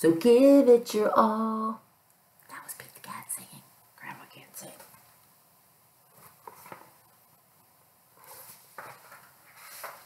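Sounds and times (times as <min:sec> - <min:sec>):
woman whispering: 0:02.4 - 0:05.0.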